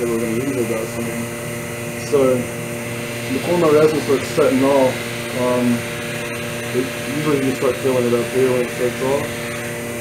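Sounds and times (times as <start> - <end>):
vacuum pump motor hum: 0.0 - 10.0.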